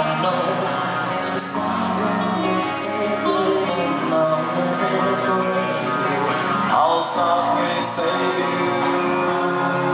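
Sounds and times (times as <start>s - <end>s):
live rock band: 0.0s - 9.9s.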